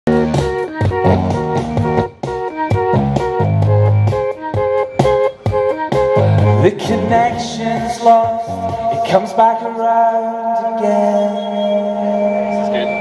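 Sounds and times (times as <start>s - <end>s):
keyboard riff over a beat: 0.1s - 13.0s.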